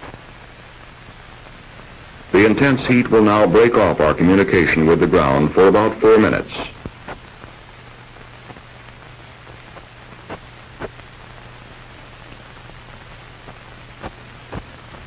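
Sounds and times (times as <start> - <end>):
steady hiss: 0.0 - 15.0
scattered clicks and pops: 6.7 - 11.5, 12.3 - 15.0.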